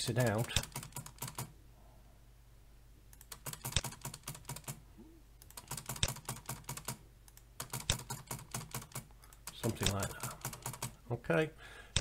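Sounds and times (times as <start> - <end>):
keyboard keys clicking: 5.4 - 10.9.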